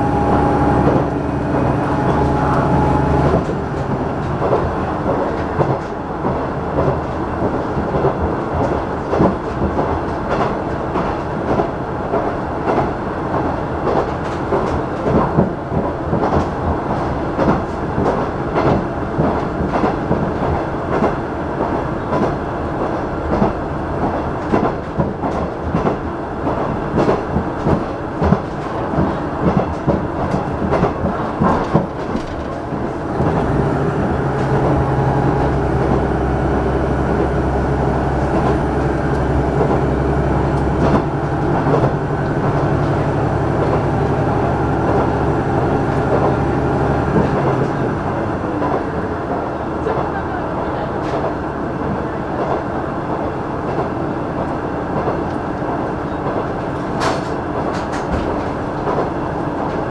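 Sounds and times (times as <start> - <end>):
wheels clacking over rail joints: 0.0 - 52.6, 53.6 - 59.9
train interior rumble: 0.0 - 59.9.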